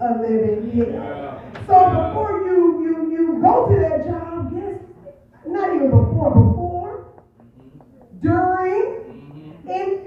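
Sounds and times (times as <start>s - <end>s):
woman preaching: 0.0s - 7.3s, 8.1s - 10.0s.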